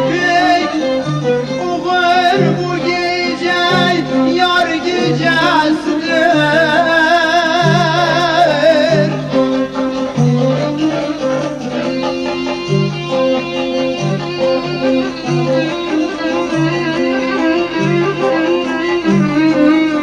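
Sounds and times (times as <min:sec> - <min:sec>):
plucked strings: 0:00.0 - 0:20.0
violin melody: 0:00.0 - 0:20.0.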